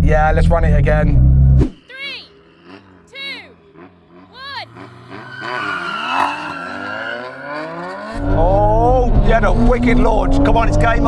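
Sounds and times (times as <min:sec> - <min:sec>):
car engines revving: 0:00.0 - 0:11.0.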